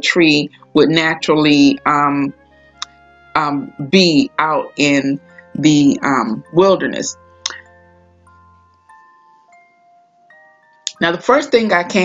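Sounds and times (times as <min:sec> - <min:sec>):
chime-like bell notes: 0:05.2 - 0:12.0.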